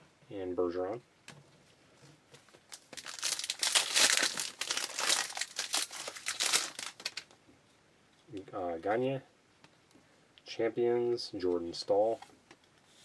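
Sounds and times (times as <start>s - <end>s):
wrapper crackling being torn open: 2.7s - 7.3s.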